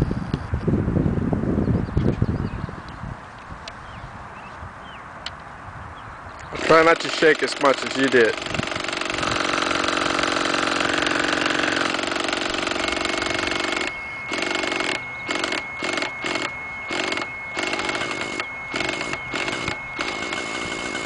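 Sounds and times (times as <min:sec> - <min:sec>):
steady high whine: 0:06.3 - 0:21.0
electric starter cranking engine: 0:06.5 - 0:21.0.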